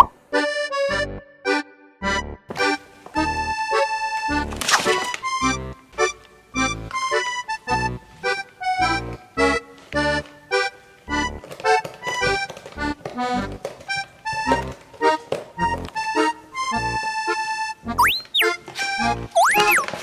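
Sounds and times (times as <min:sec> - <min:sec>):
bouncy accordion music: 0:00.0 - 0:20.0.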